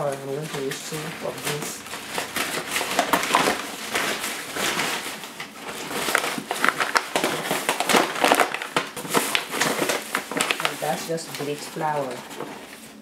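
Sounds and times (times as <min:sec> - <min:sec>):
plastic bag rustling: 0:00.0 - 0:13.0.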